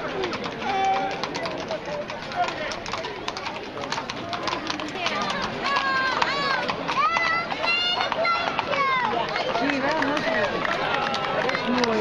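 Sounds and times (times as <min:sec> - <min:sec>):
crowd chatter: 0:00.0 - 0:12.0
hooves clopping on brick: 0:00.0 - 0:12.0.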